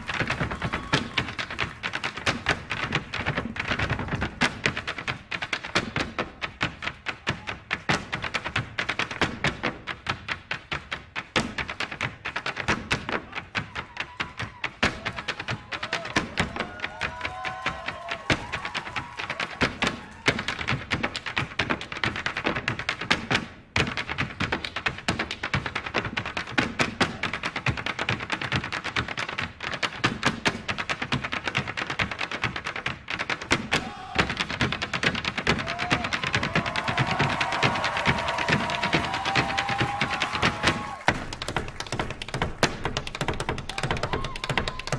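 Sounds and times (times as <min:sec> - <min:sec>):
hard-shoe dancers tapping on stage: 0:00.0 - 0:44.9.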